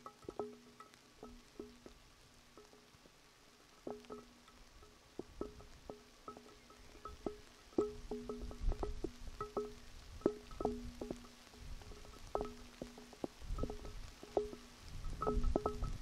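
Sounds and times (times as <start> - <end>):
raindrops dripping on resonant surface: 0.0 - 16.0.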